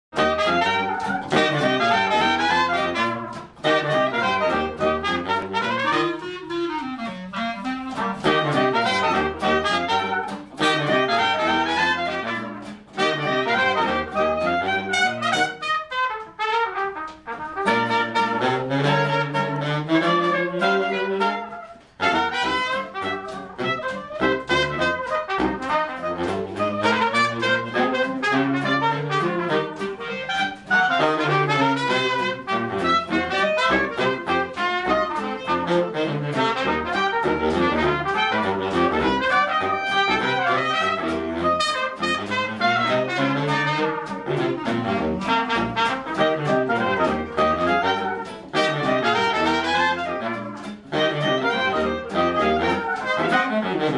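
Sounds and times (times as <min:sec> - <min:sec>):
jazz band playing: 0:00.1 - 0:53.9.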